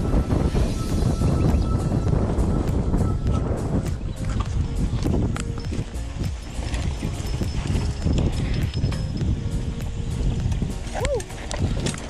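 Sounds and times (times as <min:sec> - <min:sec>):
mountain bike rumble on dirt: 0:00.0 - 0:12.0
bike rattling clicks and knocks: 0:04.0 - 0:12.0.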